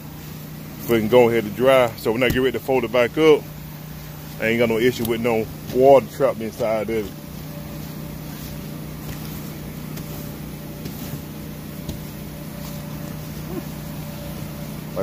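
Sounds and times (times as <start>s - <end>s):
electric blower humming: 0.0s - 15.0s.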